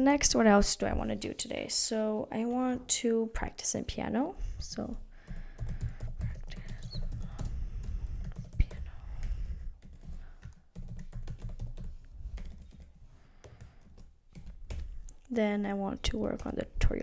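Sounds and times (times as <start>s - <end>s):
computer keyboard typing: 5.2s - 14.9s, 16.1s - 16.7s.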